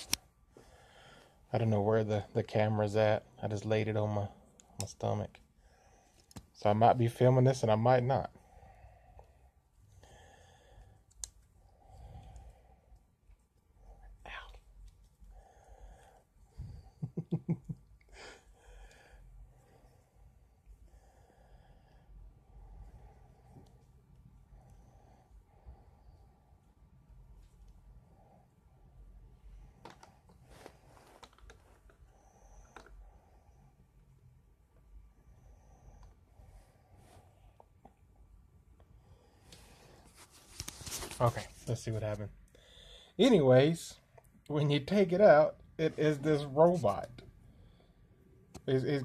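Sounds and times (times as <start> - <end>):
breathing: 0.5 - 1.5, 5.5 - 6.5, 8.3 - 13.2, 15.2 - 17.0, 18.1 - 26.9, 28.0 - 34.3, 35.1 - 37.8, 38.8 - 41.2, 42.5 - 43.2, 47.2 - 48.4
plastic toy handling: 29.8 - 32.0, 32.6 - 33.0.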